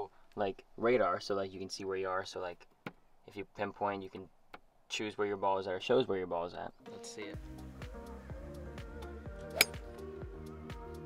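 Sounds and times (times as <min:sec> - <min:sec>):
background music with steady beat: 0:06.8 - 0:11.0
golf club striking ball: 0:09.5 - 0:10.0.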